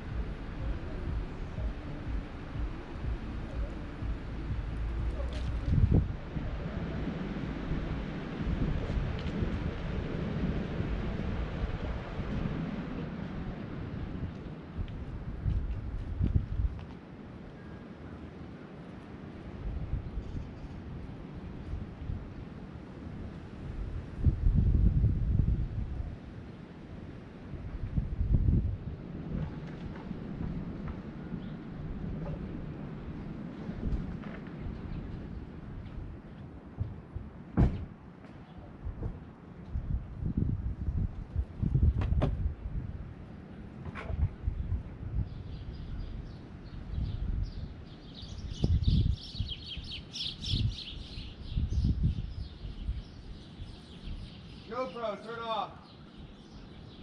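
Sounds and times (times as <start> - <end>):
wind buffeting microphone: 0.0 - 17.4, 19.2 - 54.8.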